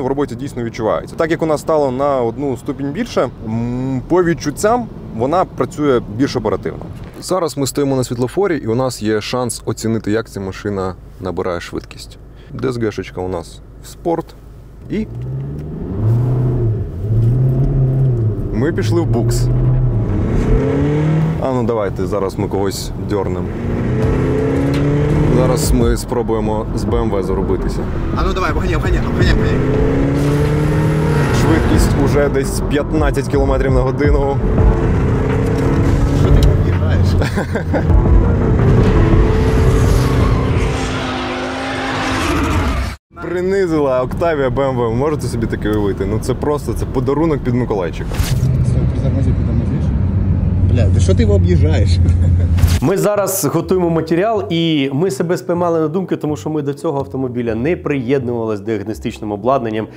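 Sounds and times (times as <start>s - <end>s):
road and tyre noise: 0.0s - 54.4s
car engine revving under full throttle: 15.0s - 43.0s
gearbox shifting up: 33.1s - 40.3s.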